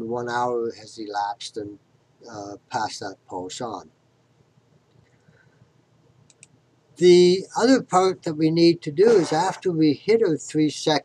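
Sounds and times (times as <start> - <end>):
computer mouse clicks: 6.2 - 6.6.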